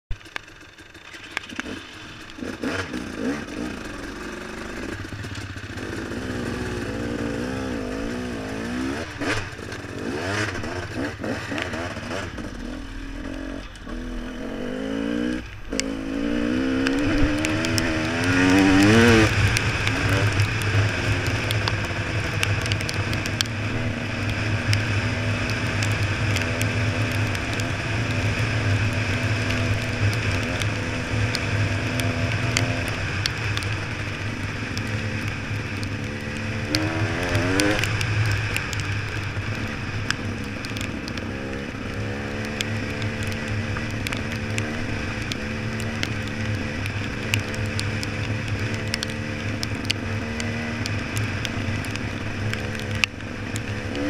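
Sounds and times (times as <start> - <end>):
motorcycle engine revving: 0.2 - 54.0.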